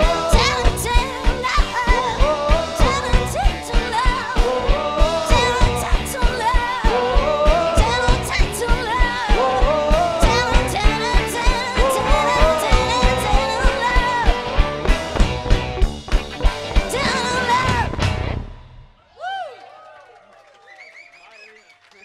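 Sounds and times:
woman singing: 0.0 - 14.4, 16.9 - 18.0
live band playing: 0.0 - 19.0.

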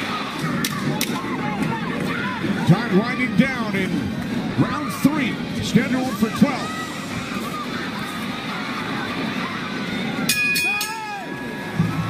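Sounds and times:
arena crowd noise: 0.0 - 12.0
crowd shouts: 0.0 - 12.0
boxing bell ringing: 10.3 - 11.3.

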